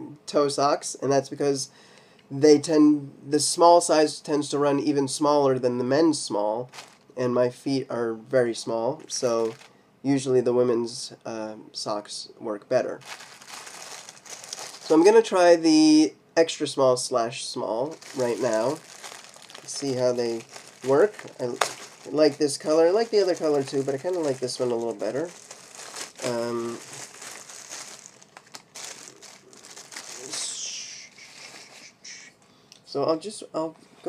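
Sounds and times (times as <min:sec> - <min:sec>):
plastic packaging crinkling: 0:06.7 - 0:07.1, 0:09.2 - 0:09.7, 0:12.9 - 0:15.2, 0:17.8 - 0:31.9
person speaking: 0:14.5 - 0:28.0, 0:28.6 - 0:33.8.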